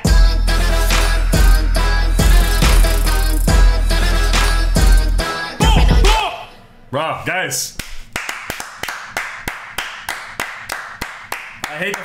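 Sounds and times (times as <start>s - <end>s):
people clapping hands: 7.8s - 12.0s.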